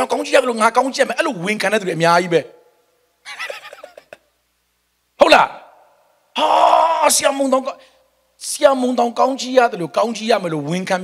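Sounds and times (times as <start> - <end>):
person laughing: 3.3 - 4.3.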